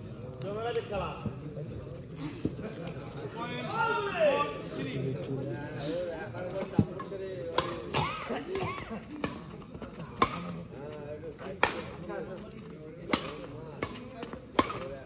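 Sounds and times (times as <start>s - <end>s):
racket hitting shuttlecock: 7.0s - 8.6s, 9.2s - 10.6s, 11.6s - 12.0s, 13.0s - 14.9s.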